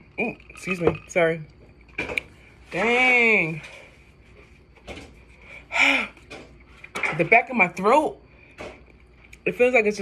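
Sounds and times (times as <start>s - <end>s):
woman sighing: 5.7s - 6.2s.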